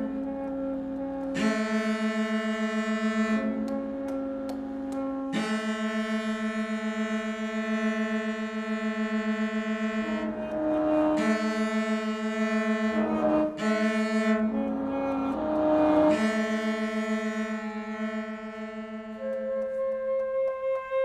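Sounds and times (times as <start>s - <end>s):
chamber trio long held notes: 0.0s - 21.0s.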